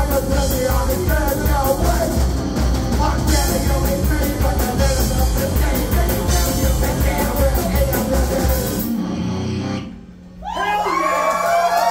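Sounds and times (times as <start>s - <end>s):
audience cheering and whooping: 10.3s - 11.9s.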